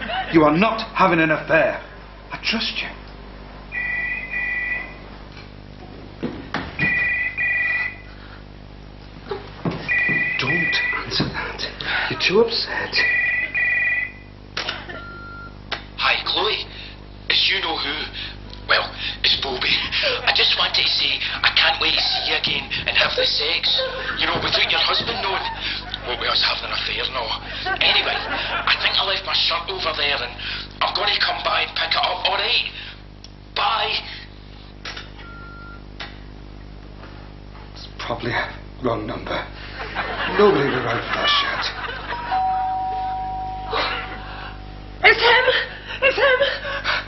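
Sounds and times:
short steady beep: 3.7 - 5.0, 9.9 - 11.1, 15.0 - 15.6, 35.2 - 35.8, 42.3 - 44.2
telephone ringing: 3.7 - 5.0, 6.8 - 8.1, 9.9 - 11.2, 13.0 - 14.3, 42.2 - 44.2
low hum: 41.8 - 45.0.

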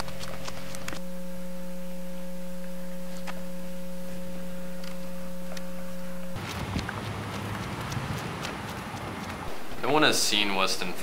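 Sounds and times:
steady electronic hum: 0.0 - 11.0.

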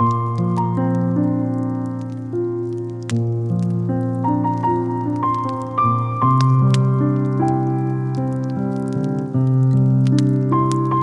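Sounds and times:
crackling wood fire pops: 0.0 - 11.0
slow soft piano music: 0.0 - 11.0.

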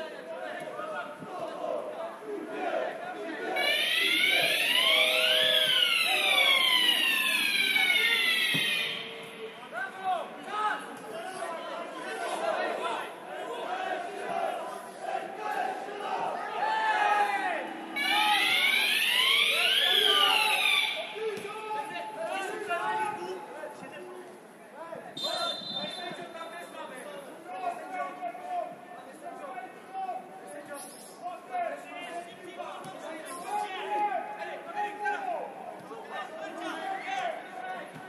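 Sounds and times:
crowd chatter: 0.0 - 38.0
siren rising and falling: 3.6 - 9.3, 17.8 - 21.2.

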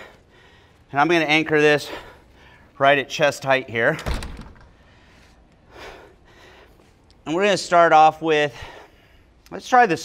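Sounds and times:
glass door shutting with thunk: 4.0 - 4.7.

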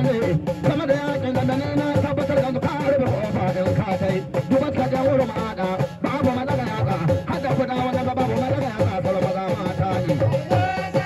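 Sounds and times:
drums beating: 0.0 - 11.0
man singing through loudspeaker: 0.0 - 11.0.

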